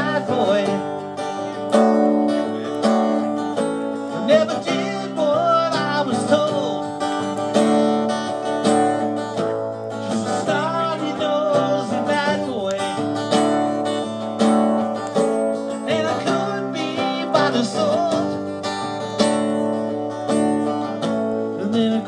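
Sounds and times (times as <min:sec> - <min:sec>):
man singing: 0:00.0 - 0:01.7, 0:04.1 - 0:07.1, 0:10.0 - 0:13.2, 0:15.6 - 0:18.6, 0:21.5 - 0:22.0
acoustic guitar strumming: 0:00.0 - 0:22.0.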